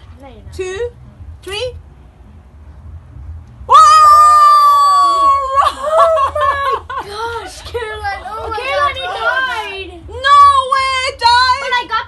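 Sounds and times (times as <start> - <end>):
high-pitched scream: 3.7 - 5.9.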